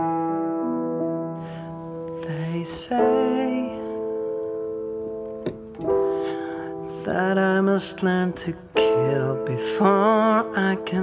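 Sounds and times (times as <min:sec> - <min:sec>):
keyboard piano chords: 0:00.0 - 0:11.0
man singing: 0:02.1 - 0:04.3, 0:06.3 - 0:11.0.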